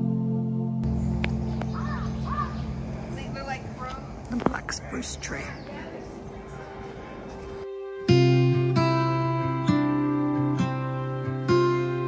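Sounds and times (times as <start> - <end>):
crow calling: 0.8 - 7.6.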